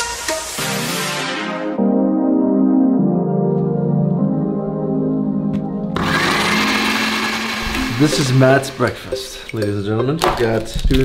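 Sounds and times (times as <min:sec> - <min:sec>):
soft background music: 0:00.0 - 0:11.0
blender whirring: 0:06.0 - 0:09.1.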